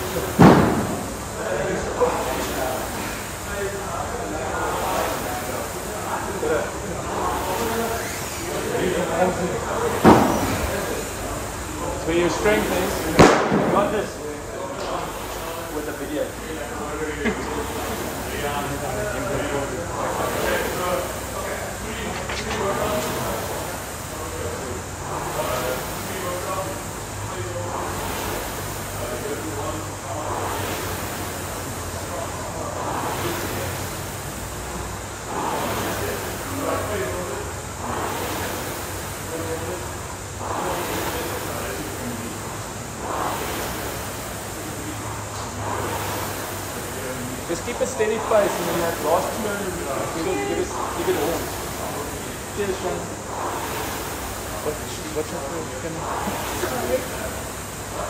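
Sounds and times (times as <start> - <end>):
rowing machine flywheel whooshing: 0.0 - 58.0.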